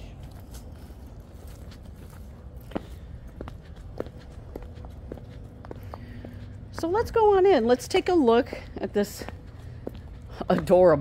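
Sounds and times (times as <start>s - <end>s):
footsteps walking: 0.0s - 11.0s
low steady rumble: 0.0s - 11.0s.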